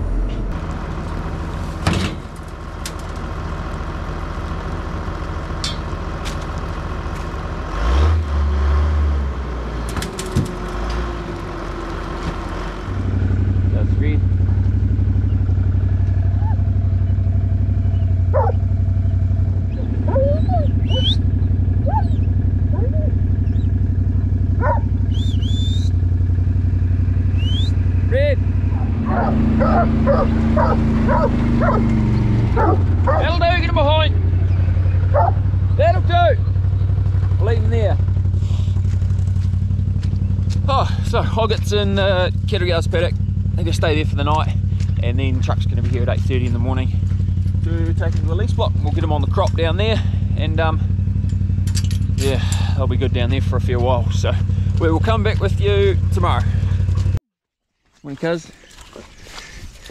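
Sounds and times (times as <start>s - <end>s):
tractor engine idling: 0.0s - 7.7s, 9.9s - 57.2s
farm vehicle engine running: 0.0s - 57.2s
dogs barking: 16.3s - 16.8s, 17.8s - 23.9s, 24.5s - 25.7s, 28.6s - 33.6s, 34.5s - 35.8s.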